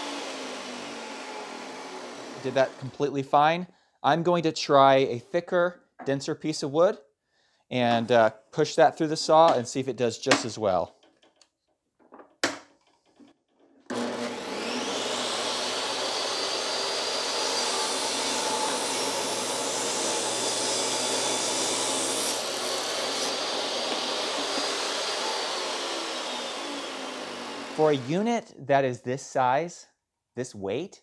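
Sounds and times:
saw blade cutting wood: 0.0 - 3.0, 13.9 - 28.3
table saw motor whining: 0.0 - 3.0, 13.9 - 28.2.

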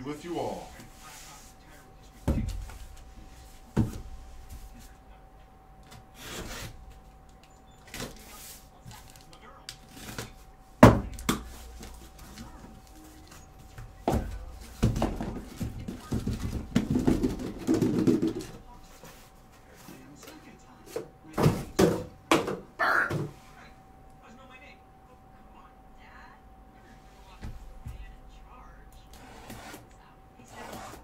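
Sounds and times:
cardboard rubbing and scraping: 6.1 - 6.9, 29.2 - 29.9, 30.5 - 31.0
knocks on cardboard case: 14.0 - 18.6.

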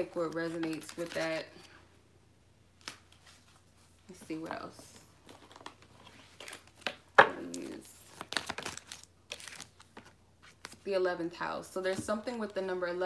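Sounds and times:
cards rustling and snapping: 0.3 - 1.7, 5.2 - 10.8.

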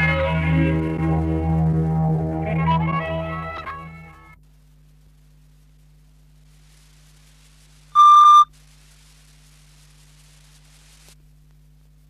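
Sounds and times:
faint low hum: 0.2 - 12.0
loud electronic beep: 8.0 - 8.5.

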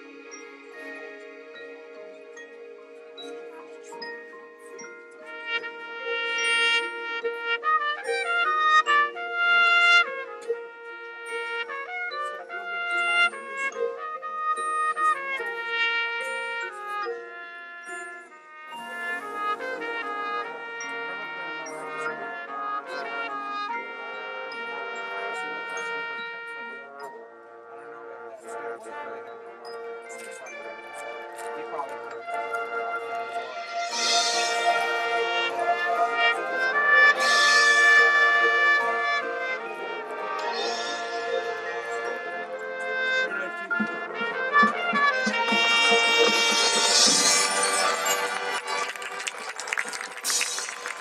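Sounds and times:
marching band playing: 29.4 - 51.0.

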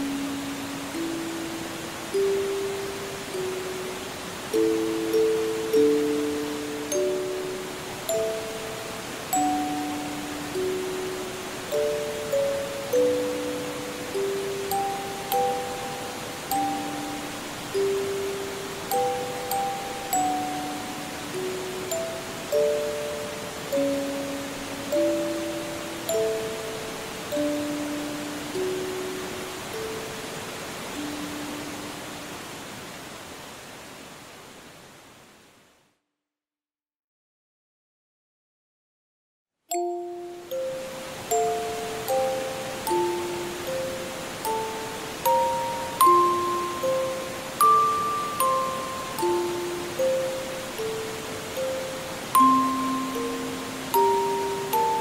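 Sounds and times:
music box lullaby: 0.0 - 32.4, 39.7 - 55.0
stream rushing: 0.0 - 35.7, 39.8 - 55.0.

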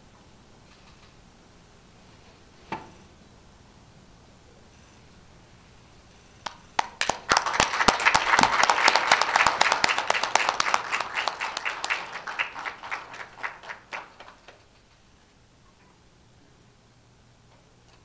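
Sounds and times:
audience applauding: 6.4 - 14.8.

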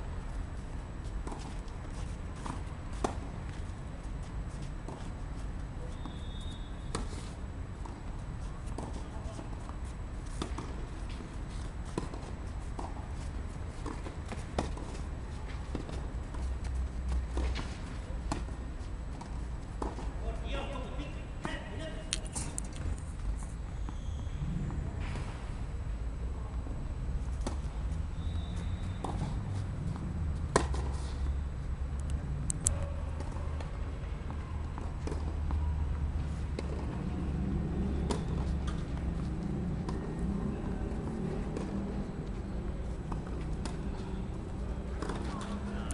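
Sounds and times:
tennis ball bouncing: 11.8 - 13.1, 29.0 - 29.4, 30.5 - 31.0, 34.8 - 35.6, 37.6 - 44.0, 44.7 - 45.7
steady low rumble: 21.2 - 45.9.

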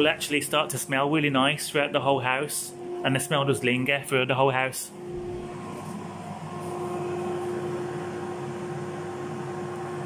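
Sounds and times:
air fryer fan whirring: 0.0 - 10.0.

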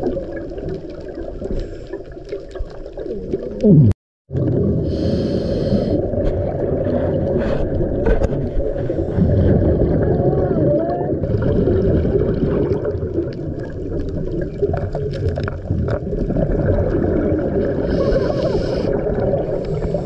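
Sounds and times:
underwater rush of water: 0.0 - 20.0
scuba regulator breathing: 4.8 - 6.1, 17.8 - 20.0.

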